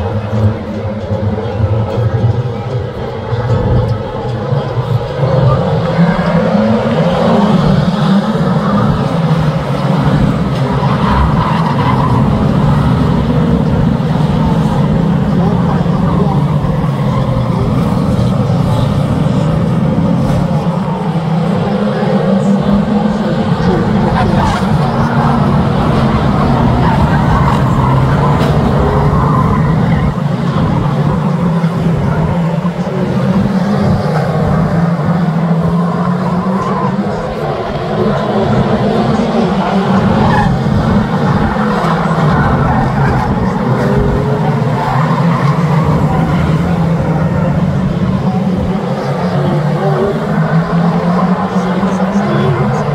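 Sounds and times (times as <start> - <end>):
stock car engines racing: 0.0 - 52.9.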